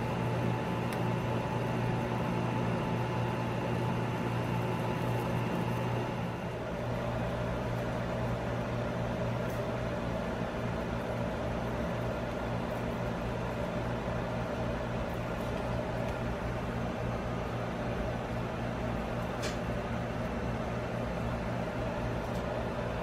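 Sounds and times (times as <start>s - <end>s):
machine hum: 0.0s - 23.0s.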